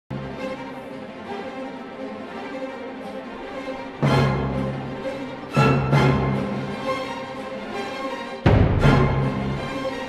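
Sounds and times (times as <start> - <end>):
orchestral bowed-string chords: 0.1 - 10.0.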